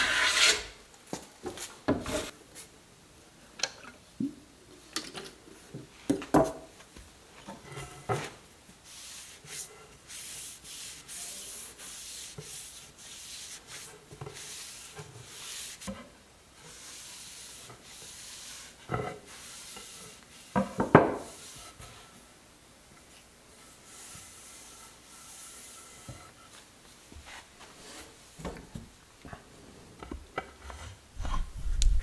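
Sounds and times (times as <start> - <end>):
rag rubbing wooden handle: 8.8 - 16.0, 16.7 - 22.0.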